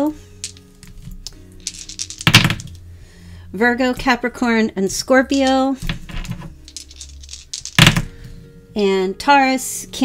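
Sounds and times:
soft background music: 0:00.0 - 0:10.0
dice clattering on a table: 0:00.4 - 0:02.8, 0:05.4 - 0:08.1.

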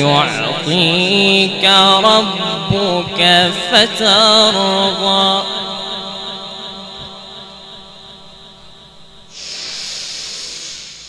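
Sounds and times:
sung note echoing through pa: 0:00.0 - 0:09.4
breath into microphone: 0:09.3 - 0:11.0.

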